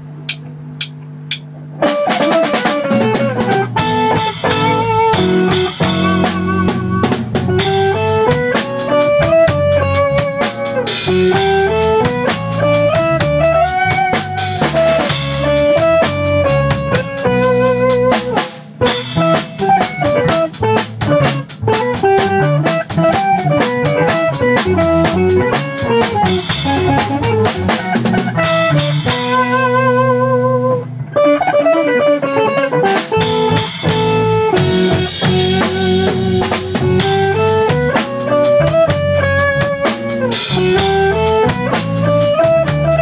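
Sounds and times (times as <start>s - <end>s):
drum kit beat: 0.0s - 43.0s
electric guitar lead line: 0.0s - 43.0s.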